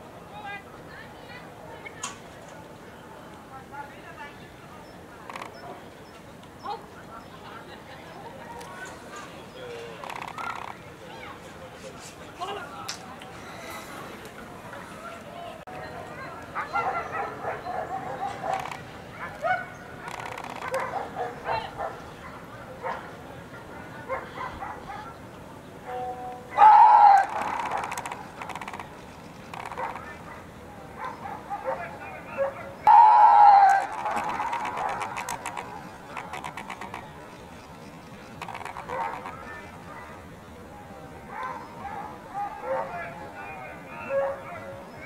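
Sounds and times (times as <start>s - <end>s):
murmur of distant voices: 0.0s - 45.0s
dog barking: 16.6s - 23.1s, 24.1s - 25.2s, 29.7s - 30.4s, 31.0s - 35.4s, 38.9s - 39.3s, 41.3s - 43.1s, 44.1s - 44.7s
loud shout: 26.5s - 27.4s, 32.9s - 34.1s.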